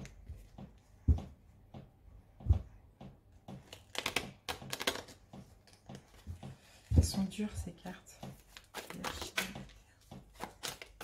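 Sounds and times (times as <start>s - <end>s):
cards being shuffled: 3.6s - 6.5s.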